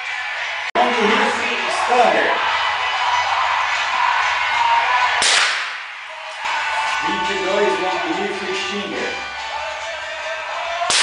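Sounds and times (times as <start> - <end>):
loud car stereo music: 0.0 - 11.0
gunshot crack: 5.2 - 5.9.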